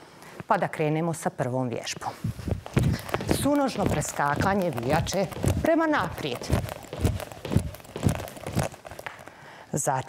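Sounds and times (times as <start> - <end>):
jump rope skipping on hard floor: 2.5 - 9.3.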